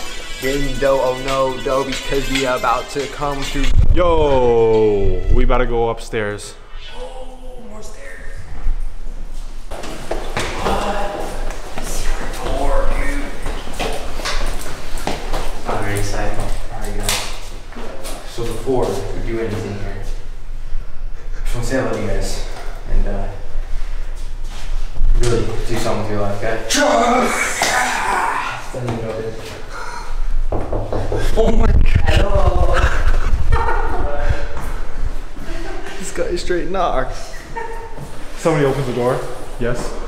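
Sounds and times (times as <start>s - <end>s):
person speaking: 0.0s - 8.6s
footsteps on stairs: 9.7s - 16.5s.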